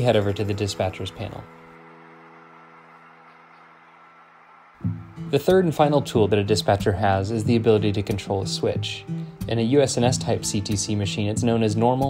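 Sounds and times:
held music chords: 4.8 - 12.0.

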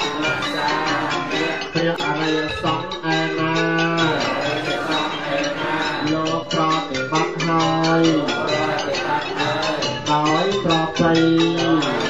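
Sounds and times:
monks chanting in unison: 0.0 - 12.0.

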